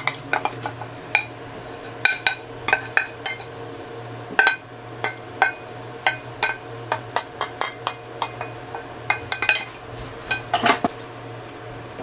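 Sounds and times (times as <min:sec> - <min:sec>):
metal pot clinking on ceramic bowl: 0:04.4 - 0:10.8.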